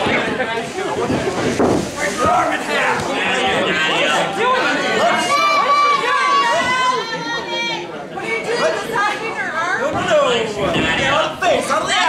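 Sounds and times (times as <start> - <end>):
crowd shouting: 2.0 - 8.9
long drawn-out yell: 4.8 - 7.9.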